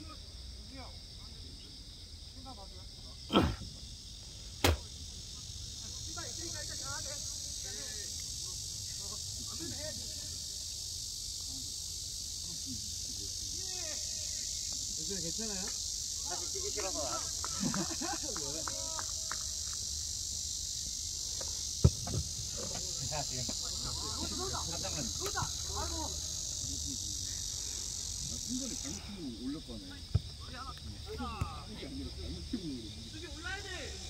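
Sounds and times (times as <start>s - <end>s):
cicadas buzzing: 0.0s - 34.0s
football being kicked: 21.8s - 22.4s.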